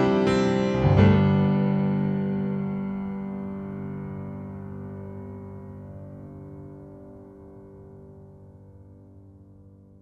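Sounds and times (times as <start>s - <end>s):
grand piano chord ringing: 0.0s - 9.3s.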